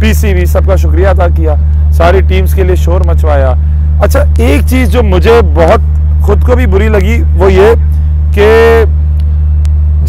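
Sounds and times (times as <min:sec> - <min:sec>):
loud steady low hum: 0:00.0 - 0:10.0.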